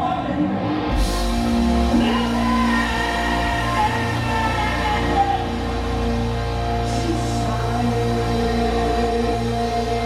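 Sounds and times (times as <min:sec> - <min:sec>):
electric guitar and bass: 0:00.0 - 0:10.0
person singing: 0:01.8 - 0:10.0.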